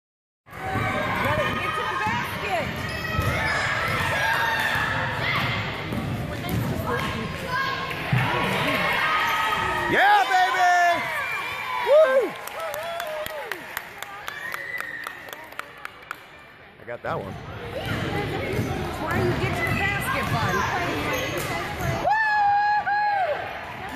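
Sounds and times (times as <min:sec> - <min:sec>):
spectators talking: 0:15.2 - 0:22.1
sneakers squeaking on court: 0:17.4 - 0:22.1
basketball bouncing: 0:17.8 - 0:20.8.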